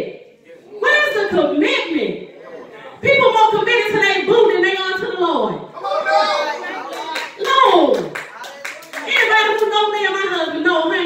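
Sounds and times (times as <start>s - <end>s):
hand claps: 6.9s - 9.7s.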